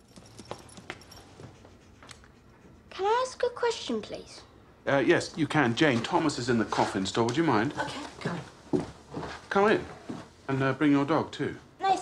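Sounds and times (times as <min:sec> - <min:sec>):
dog claws clicking on hard floor: 0:00.0 - 0:01.3.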